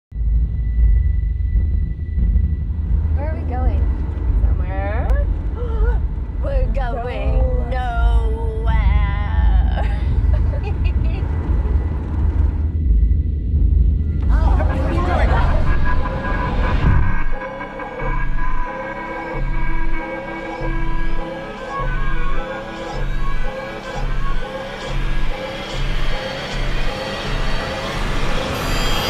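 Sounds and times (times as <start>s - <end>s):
dark droning low rumble: 0.1s - 29.0s
woman's wordless wavering vocals: 4.8s - 9.9s
thin steady high tone: 20.4s - 29.0s.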